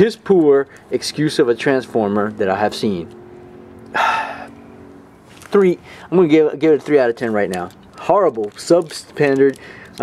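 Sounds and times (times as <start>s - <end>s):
man sighing: 3.9s - 4.6s.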